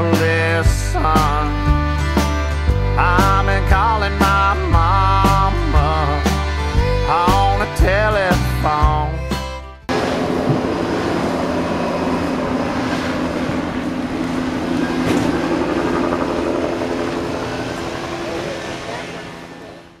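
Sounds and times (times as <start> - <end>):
low hum: 9.9 - 20.0.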